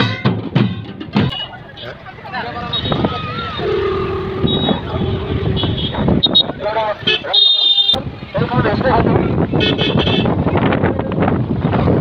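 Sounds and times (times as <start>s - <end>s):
passing traffic: 0.6s - 12.0s
crowd voices: 1.2s - 12.0s.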